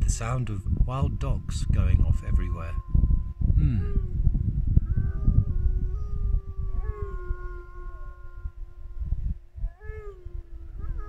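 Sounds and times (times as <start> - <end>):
low uneven rumble: 0.0 - 11.0
dogs howling: 4.0 - 11.0.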